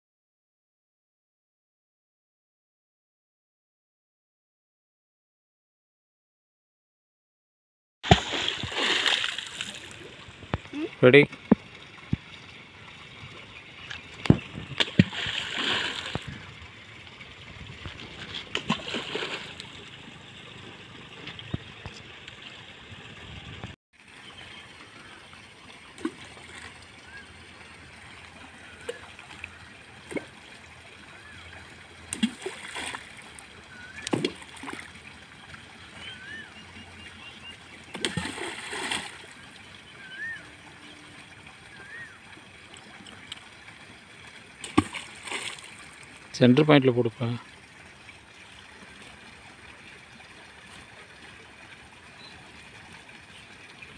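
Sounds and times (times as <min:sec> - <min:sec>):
objects splashing into water: 0:08.0 - 0:10.6, 0:14.2 - 0:16.4, 0:17.8 - 0:19.8, 0:32.0 - 0:35.0, 0:37.9 - 0:39.4, 0:44.6 - 0:45.9.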